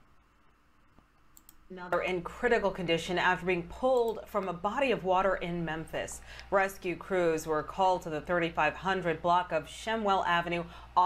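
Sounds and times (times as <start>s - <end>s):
computer mouse clicks: 0.9s - 2.0s.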